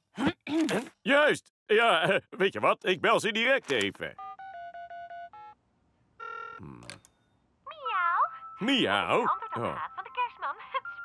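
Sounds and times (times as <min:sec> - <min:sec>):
phone ringing tone: 0:04.1 - 0:05.6, 0:06.2 - 0:07.3
phone keypad beeps: 0:04.2 - 0:05.6.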